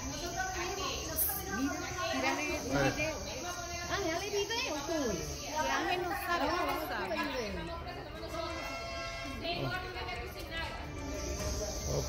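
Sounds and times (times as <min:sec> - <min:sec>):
woman talking: 0:00.0 - 0:08.6.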